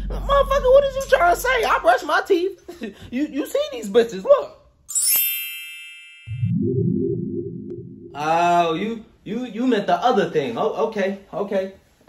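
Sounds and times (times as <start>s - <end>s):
bright high chime: 4.9s - 6.5s
low synthesized drone: 6.4s - 8.4s.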